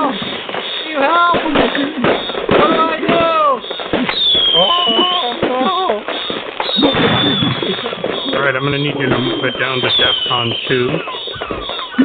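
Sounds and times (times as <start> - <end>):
fireworks crackling and popping: 0.0 - 12.0
high firework whistle: 0.0 - 12.0
people laughing and shouting: 0.0 - 12.0.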